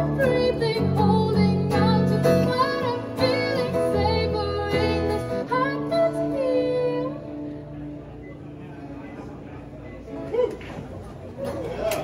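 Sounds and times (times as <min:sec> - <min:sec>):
woman singing into a microphone: 0:00.0 - 0:07.6
acoustic guitar chords: 0:00.0 - 0:10.3.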